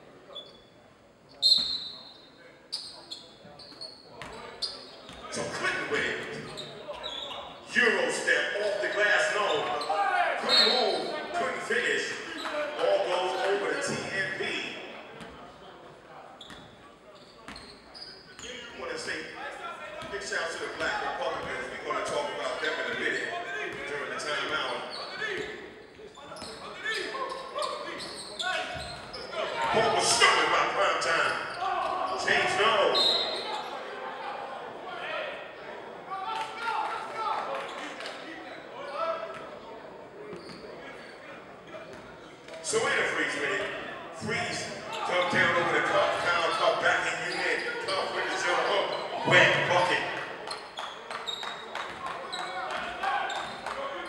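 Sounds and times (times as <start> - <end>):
indistinct voices echoing: 4.9 - 15.6, 18.4 - 39.8, 41.2 - 54.0.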